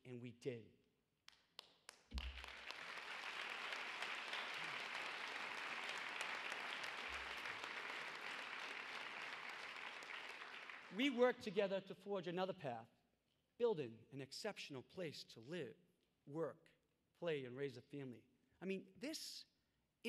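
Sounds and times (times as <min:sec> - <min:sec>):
audience applauding: 0:02.1 - 0:11.3.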